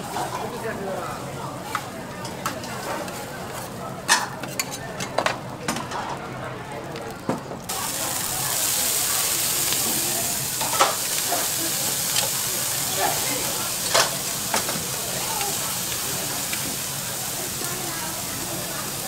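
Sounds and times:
food sizzling on a griddle: 7.6s - 19.0s.

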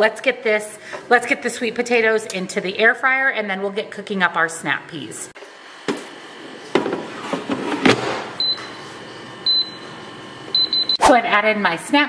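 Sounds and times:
control panel beeps: 8.4s - 8.8s, 9.4s - 9.9s, 10.5s - 11.0s.

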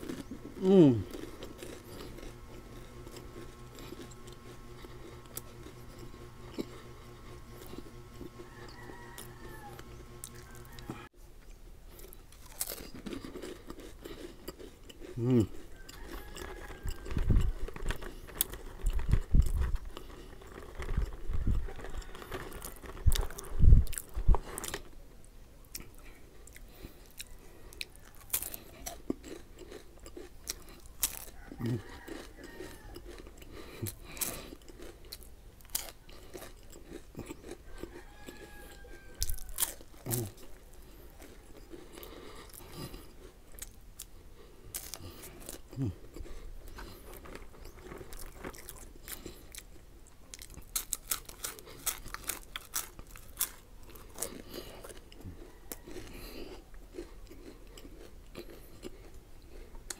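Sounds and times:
person humming: 0.0s - 1.3s, 15.2s - 15.6s, 31.6s - 31.8s, 45.6s - 46.1s
crunching and chewing wafer sticks: 0.0s - 59.9s.

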